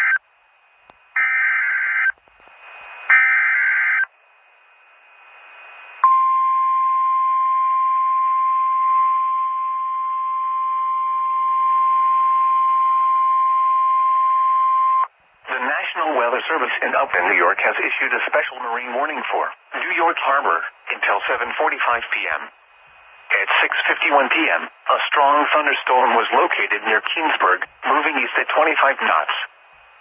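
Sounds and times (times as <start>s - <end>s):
steady alarm tone: 1.2s - 2.1s, 3.1s - 4.1s.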